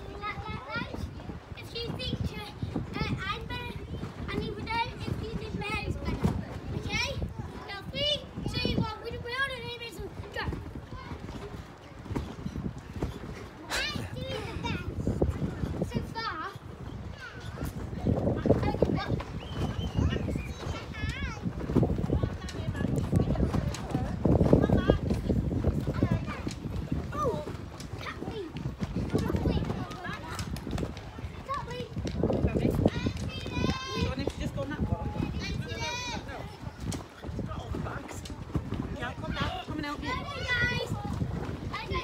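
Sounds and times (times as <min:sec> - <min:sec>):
child's high voice: 0:13.7 - 0:14.9.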